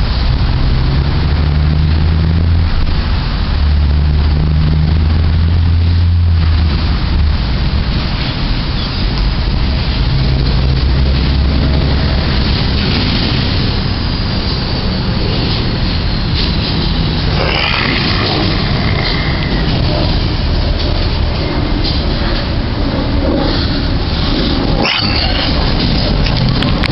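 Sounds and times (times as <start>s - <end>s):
wind buffeting microphone: 0.0s - 26.9s.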